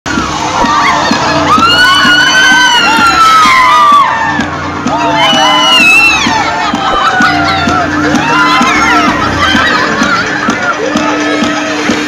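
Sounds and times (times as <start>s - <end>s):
background music with steady beat: 0.1s - 12.0s
ride passengers screaming: 0.1s - 12.0s.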